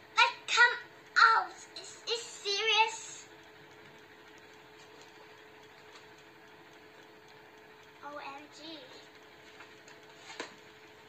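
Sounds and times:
faint steady hum: 0.0s - 11.0s
girl exclaiming: 0.2s - 3.2s.

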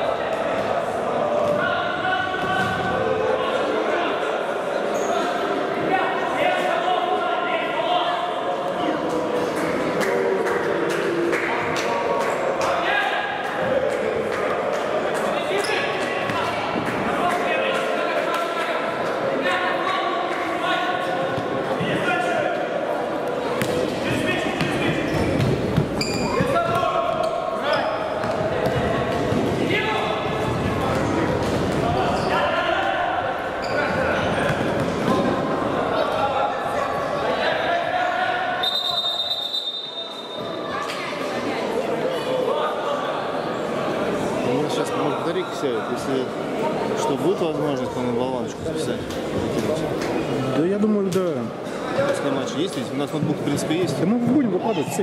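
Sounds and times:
high-pitched whistle: 38.6s - 40.5s.

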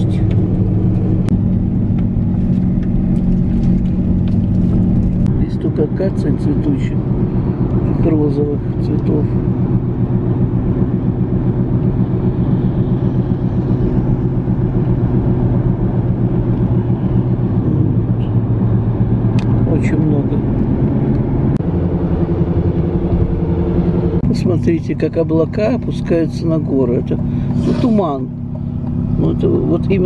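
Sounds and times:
car engine and road noise: 0.0s - 30.0s.

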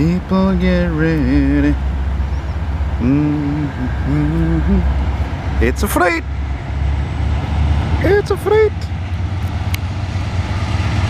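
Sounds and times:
diesel locomotive rumble: 0.0s - 11.0s.

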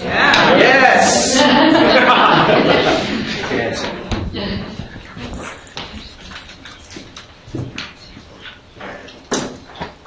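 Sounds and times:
microphone handling knocks and rustles: 4.0s - 6.2s, 6.8s - 8.0s.

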